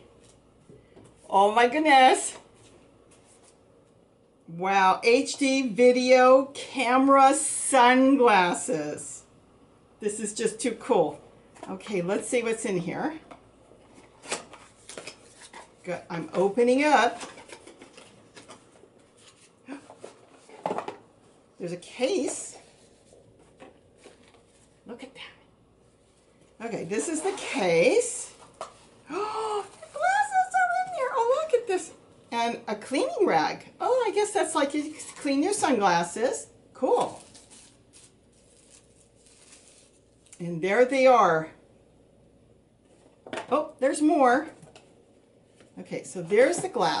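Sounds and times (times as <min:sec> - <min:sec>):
wrapper rustling: 0:37.1 - 0:40.4.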